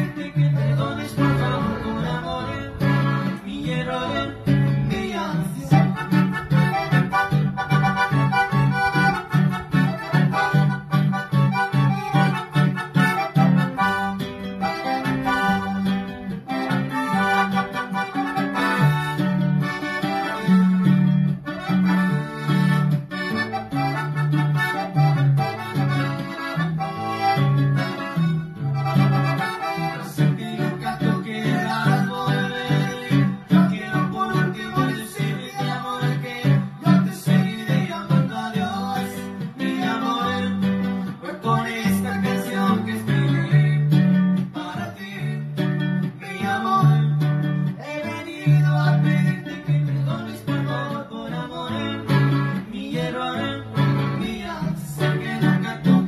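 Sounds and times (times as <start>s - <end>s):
man singing: 0.0s - 19.4s, 27.4s - 56.0s
bass line: 0.0s - 56.0s
button accordion melody: 0.0s - 56.0s
strummed acoustic guitar: 0.0s - 56.0s.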